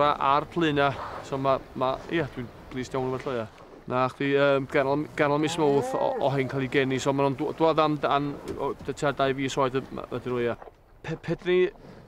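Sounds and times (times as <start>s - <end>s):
man talking: 0.0s - 11.8s.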